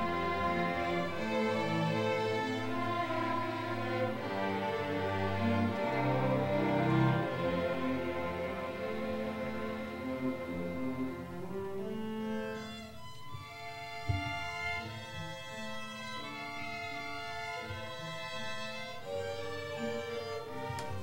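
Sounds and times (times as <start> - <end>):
string orchestra playing bowed notes: 0.0 - 21.0
low thump: 14.0 - 14.5.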